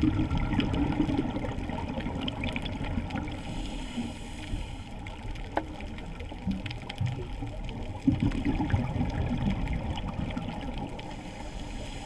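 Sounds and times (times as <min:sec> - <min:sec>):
small underwater clicks: 0:00.0 - 0:12.0
underwater water wash: 0:00.0 - 0:12.0.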